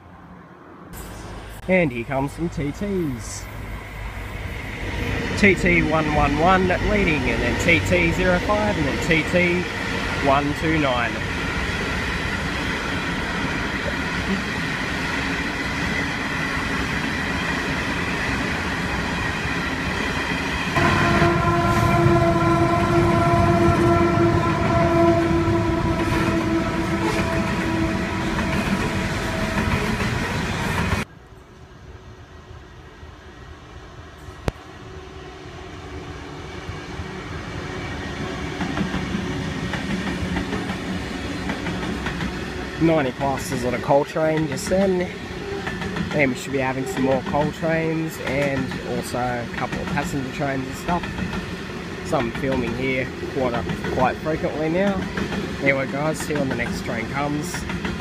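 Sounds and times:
train wagons clattering on track: 0:04.7 - 0:31.1, 0:37.8 - 0:58.0.

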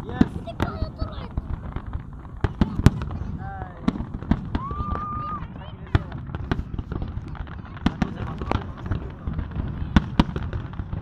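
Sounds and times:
fireworks exploding: 0:00.0 - 0:11.0
fireworks popping and crackling: 0:00.0 - 0:11.0.

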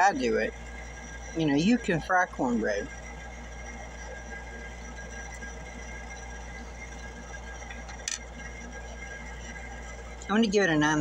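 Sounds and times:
low room hum with hiss: 0:00.0 - 0:11.0.

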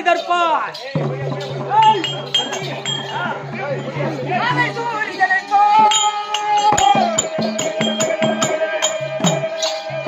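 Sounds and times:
voices talking: 0:00.0 - 0:08.3
hand cymbals clinking: 0:00.0 - 0:10.0.

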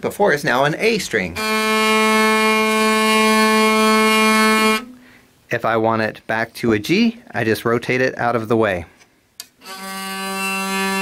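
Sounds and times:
hurdy-gurdy string droning: 0:01.3 - 0:05.0, 0:09.6 - 0:11.0.

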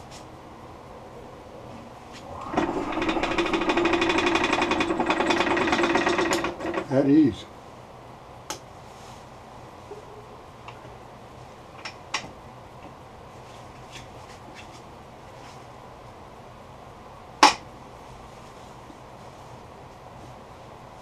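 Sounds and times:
wood lathe buzzing hum: 0:02.3 - 0:06.8
rapid ticking: 0:02.4 - 0:06.8.

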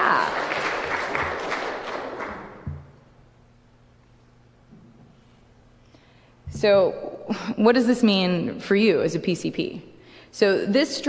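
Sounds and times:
audience applause: 0:00.0 - 0:02.6.

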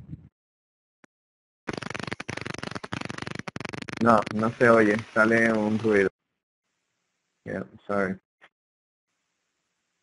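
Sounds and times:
harsh crackling audio noise: 0:01.7 - 0:06.1.

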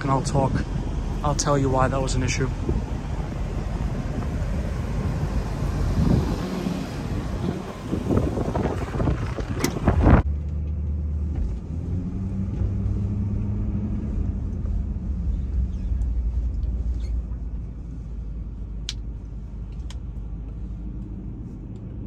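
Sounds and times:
muffled idling engine hum: 0:00.0 - 0:22.0
street noise: 0:00.0 - 0:22.0
wind: 0:00.0 - 0:22.0.

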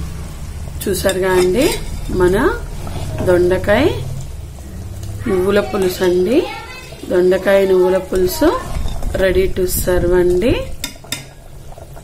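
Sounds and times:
ladle scraping metal pot: 0:01.0 - 0:03.7, 0:05.0 - 0:09.4, 0:10.4 - 0:12.0.

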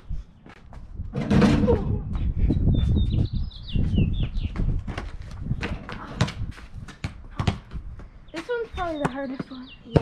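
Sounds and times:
bird chirping: 0:02.5 - 0:04.8, 0:08.2 - 0:10.0.

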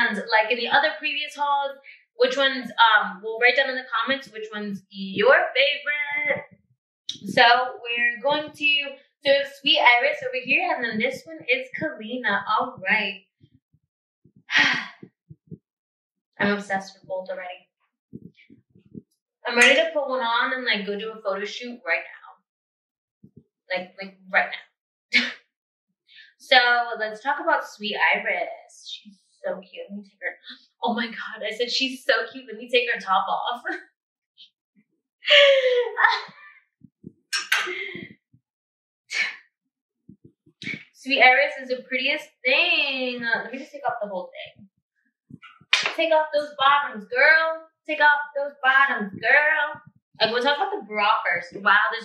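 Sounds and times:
woman laughing: 0:35.3 - 0:36.4.

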